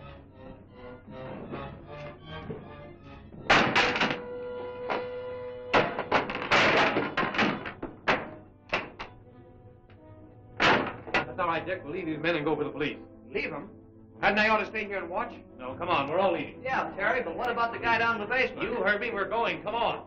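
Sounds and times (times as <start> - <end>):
dramatic orchestral music: 0.0 - 6.4, 7.1 - 20.0
loud thuds and knocks: 2.4 - 4.2, 5.7 - 9.2, 10.6 - 11.4.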